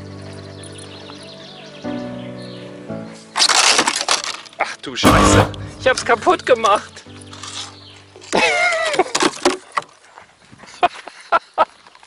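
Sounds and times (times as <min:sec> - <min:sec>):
background music: 0:00.0 - 0:08.7
panel crashing against seating: 0:05.1 - 0:06.1.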